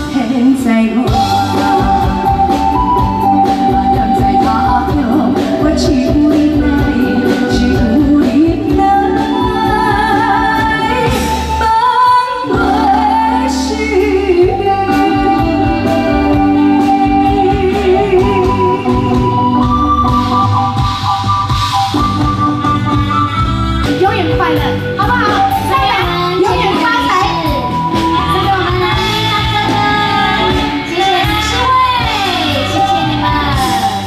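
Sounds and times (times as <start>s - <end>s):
woman singing with vibrato: 0.0s - 19.8s, 23.9s - 34.0s
accompanying music: 0.0s - 34.0s.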